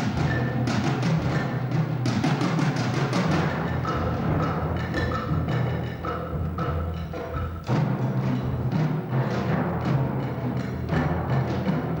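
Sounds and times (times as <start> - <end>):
drums and timpani playing: 0.0 - 12.0.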